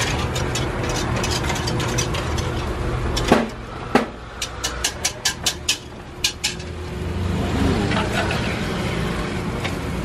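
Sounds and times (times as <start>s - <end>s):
whisk rattling in metal kettle: 0.0s - 3.4s, 4.4s - 6.7s.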